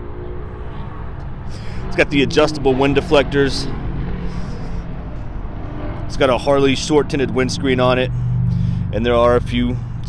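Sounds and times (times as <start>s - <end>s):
engine idling: 0.5s - 10.0s.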